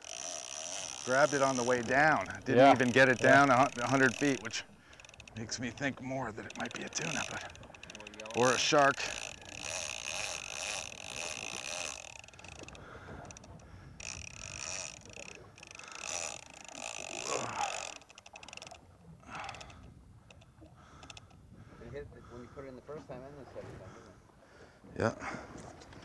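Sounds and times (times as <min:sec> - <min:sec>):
fishing reel whirring: 0:00.0 - 0:21.4.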